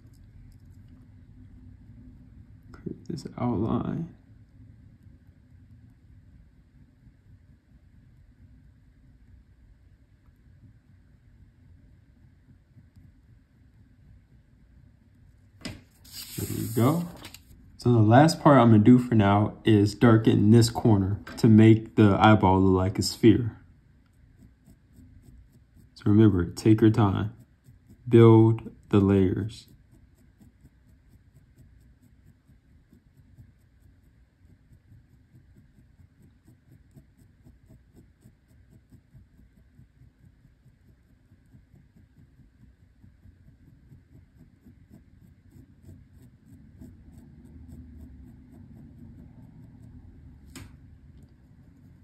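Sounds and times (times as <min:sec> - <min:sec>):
pen scratching on paper: 0:15.1 - 0:17.6, 0:19.7 - 0:52.0.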